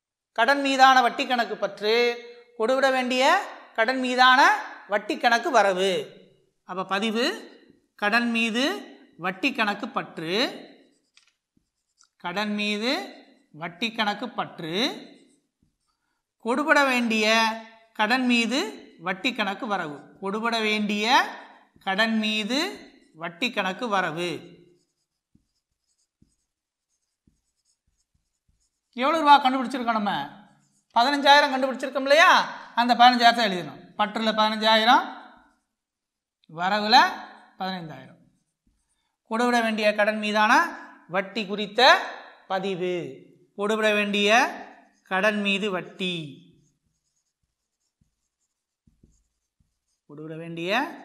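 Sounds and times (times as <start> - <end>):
marker scratching on whiteboard: 6.1 - 33.2, 34.1 - 35.8, 38.2 - 39.2, 43.7 - 51.0
soft marker taps: 10.7 - 12.2, 24.6 - 29.0, 46.6 - 50.1.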